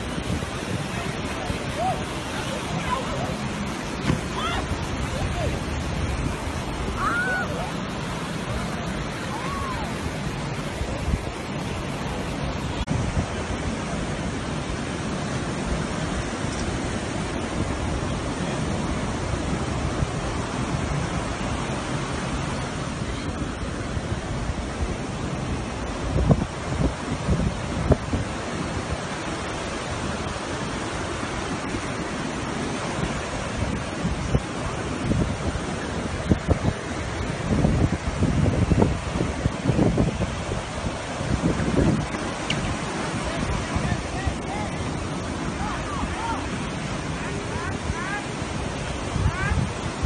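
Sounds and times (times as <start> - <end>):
surf breaking on beach: 0.0 - 50.0
wind on microphone: 0.0 - 50.0.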